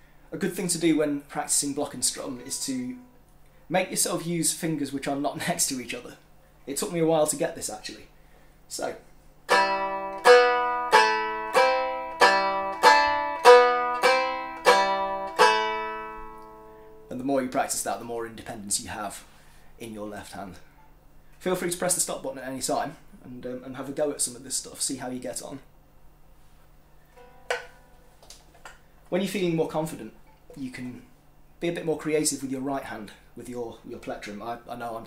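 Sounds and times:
lyre strummed chords: 0:09.5 - 0:17.2.

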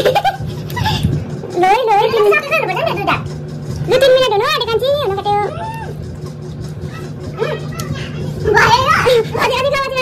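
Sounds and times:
women's voices: 0:03.9 - 0:05.9.

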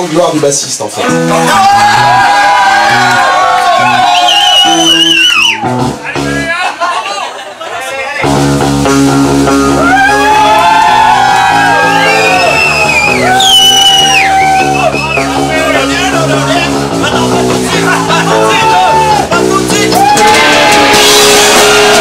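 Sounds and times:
live band with electric guitars: 0:01.0 - 0:07.1, 0:08.2 - 0:22.0.

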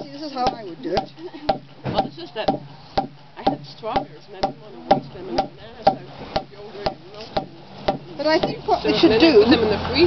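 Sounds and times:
mallet striking a log: 0:00.0 - 0:08.6.

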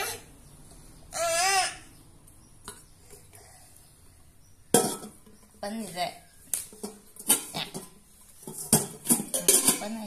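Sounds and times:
metal pot lid clanking: 0:04.7 - 0:05.3, 0:06.8 - 0:10.0.

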